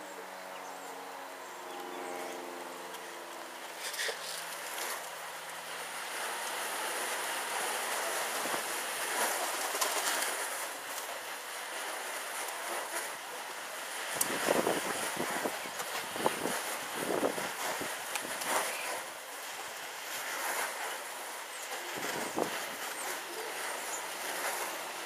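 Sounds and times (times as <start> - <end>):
pigeon wings flapping: 7.2 - 11.2
wind rushing over microphone: 14.0 - 19.1, 21.8 - 25.0.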